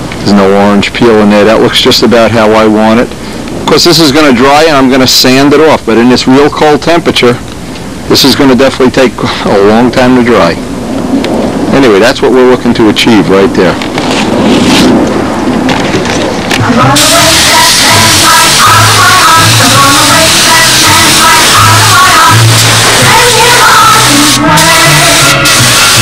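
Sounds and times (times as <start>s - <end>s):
music with pitched notes: 16.6s - 26.0s
paint spray gun hissing: 16.9s - 26.0s.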